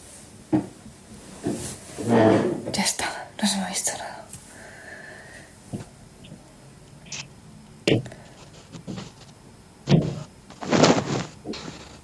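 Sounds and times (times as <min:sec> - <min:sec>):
phone handling bumps and rustles: 0:09.9 - 0:12.0.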